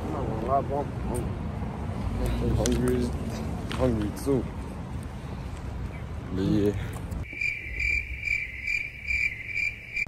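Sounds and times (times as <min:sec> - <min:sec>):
cricket chirping: 0:07.2 - 0:10.0.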